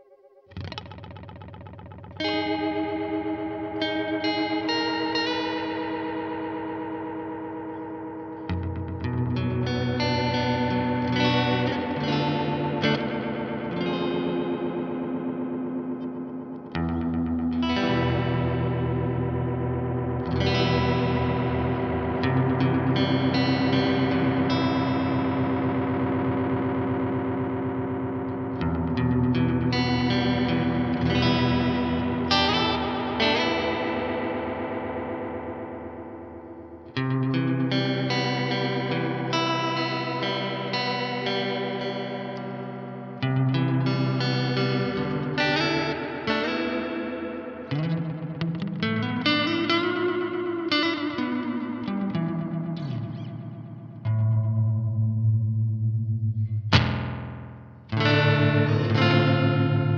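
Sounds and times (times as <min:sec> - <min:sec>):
electric guitar chords with delay: 0:00.0 - 0:59.9.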